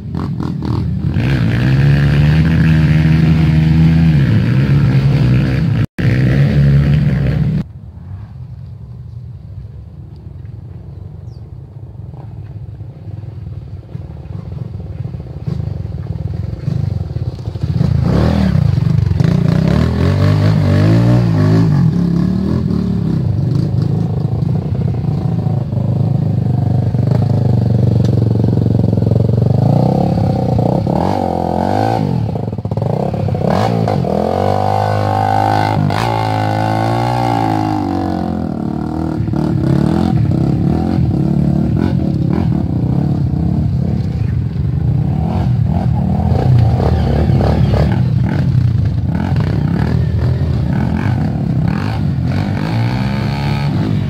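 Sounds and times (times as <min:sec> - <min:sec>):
dirt bike engines revving: 0:00.0 - 0:07.7, 0:12.0 - 0:54.0.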